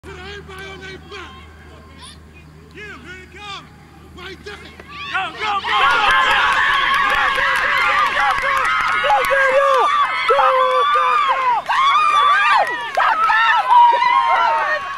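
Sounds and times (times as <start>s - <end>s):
crowd yelling and screaming: 4.7s - 14.9s.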